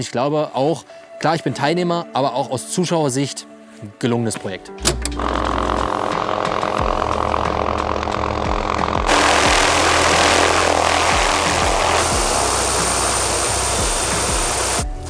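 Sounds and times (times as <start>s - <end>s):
background music with low beat: 4.3s - 15.0s
helicopter rotor: 5.2s - 14.8s
thin high steady whine: 5.2s - 14.9s.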